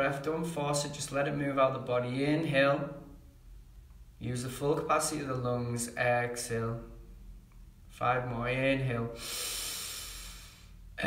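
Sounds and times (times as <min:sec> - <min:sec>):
man breathing in deeply: 0:09.2 - 0:11.0.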